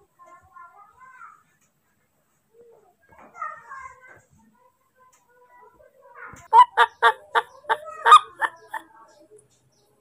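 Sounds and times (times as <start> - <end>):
baby monkey calling: 6.5 - 8.8.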